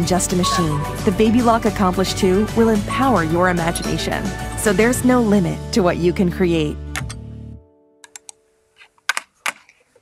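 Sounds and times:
computer keyboard clicks: 8.0 - 8.4.

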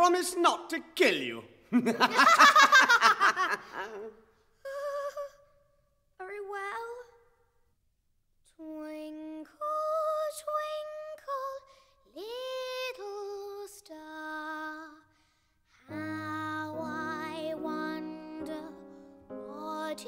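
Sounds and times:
soft instrumental accompaniment: 15.9 - 20.0.

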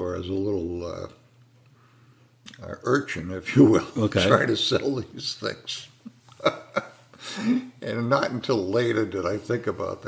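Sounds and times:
person laughing: 6.0 - 7.8.

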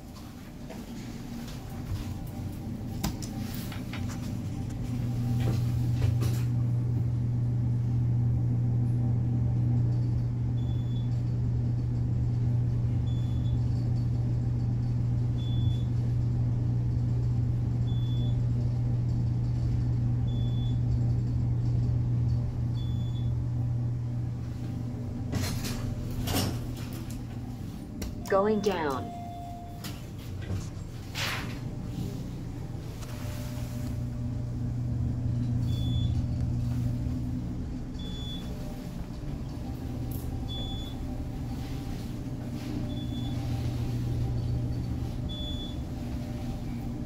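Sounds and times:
elevator hoist hum: 0.0 - 47.0
short high beep: 28.6 - 29.8.

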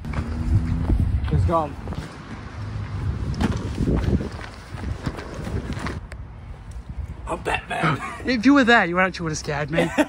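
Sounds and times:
footsteps on a path: 0.0 - 6.8.

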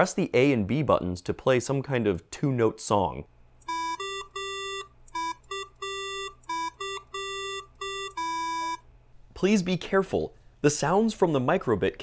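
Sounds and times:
buzzy square-wave beeps: 3.7 - 8.8.

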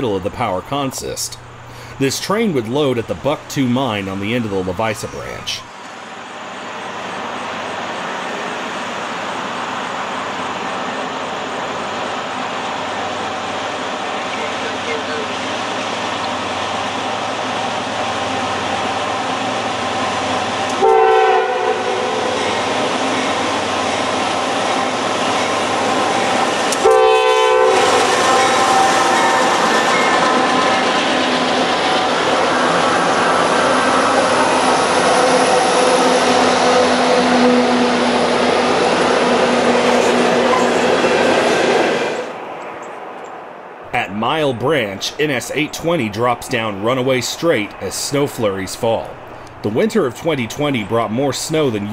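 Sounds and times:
diesel locomotive rumble: 0.0 - 51.9
train horn blasts: 20.7 - 22.5, 26.7 - 29.6, 35.2 - 38.1
hopper cars rolling past: 21.4 - 51.9.

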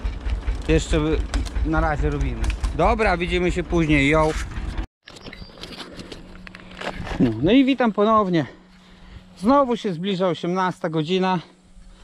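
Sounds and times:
camera handling rustles and knocks: 4.4 - 7.4.

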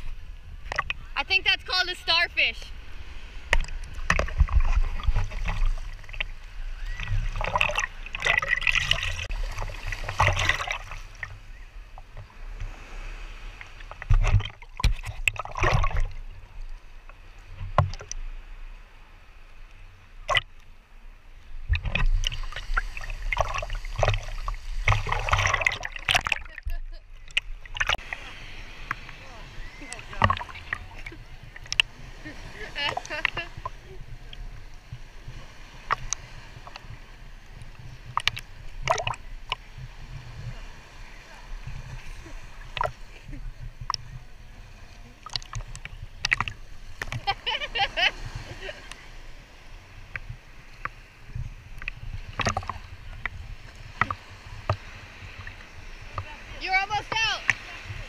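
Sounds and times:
seawater sloshing and splashing: 0.0 - 1.4, 2.4 - 18.4, 20.2 - 20.6, 21.5 - 58.0
low rumble of waves: 0.0 - 58.0.

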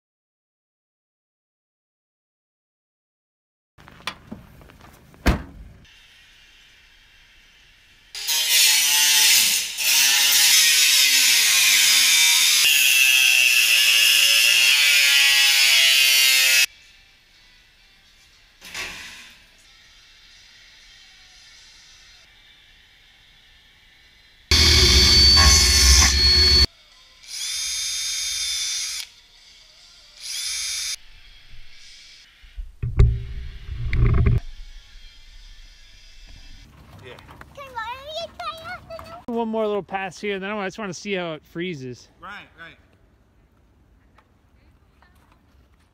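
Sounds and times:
power tool running: 24.5 - 26.7
sharp knocks: 32.8 - 34.4.

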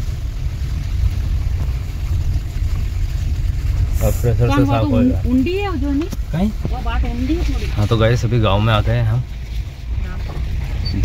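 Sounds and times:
car rumbling on dirt road: 0.0 - 11.0.

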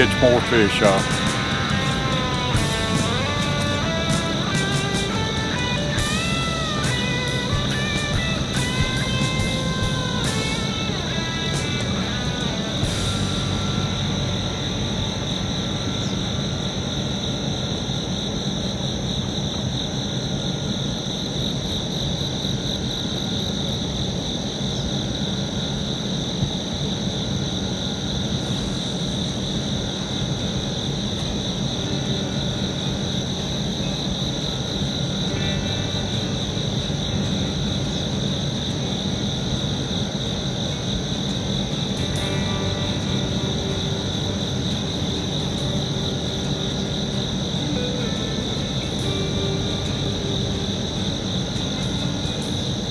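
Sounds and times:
insects chorus: 0.0 - 52.9.

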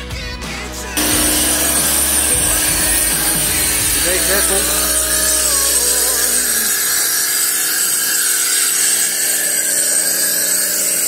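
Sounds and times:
background music: 0.0 - 7.2
pressure washer motor hum: 1.0 - 11.0.

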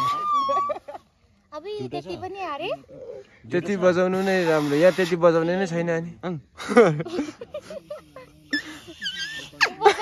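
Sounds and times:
laughter: 0.0 - 1.2, 6.6 - 10.0
leaf whistle squeaks: 8.5 - 9.7.

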